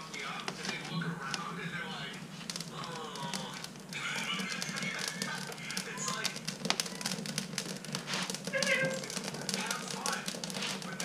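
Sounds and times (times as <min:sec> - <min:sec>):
wood fire crackling and popping: 0:00.0 - 0:11.0
stove door squealing: 0:06.8 - 0:09.7.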